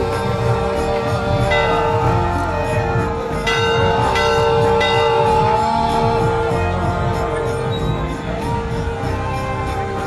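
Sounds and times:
large brass bell ringing: 0.0s - 10.0s.

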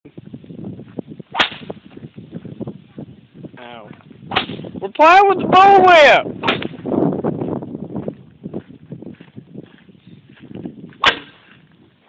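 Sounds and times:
bullwhip cracking: 1.3s - 1.8s, 4.3s - 4.6s, 11.0s - 11.5s
faint scuffing: 7.4s - 12.0s.

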